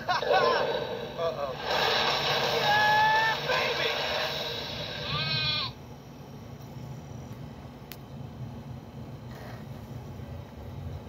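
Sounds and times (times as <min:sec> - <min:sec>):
faint room hum: 0:00.0 - 0:11.0
loud rushing sound effect: 0:00.6 - 0:05.2
wavering creature cry: 0:02.6 - 0:03.7, 0:05.0 - 0:05.8.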